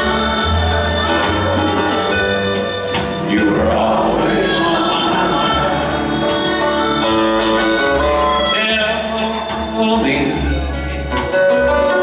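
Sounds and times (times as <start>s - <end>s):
live country band music: 0.0s - 12.0s
steady bass line: 0.0s - 12.0s.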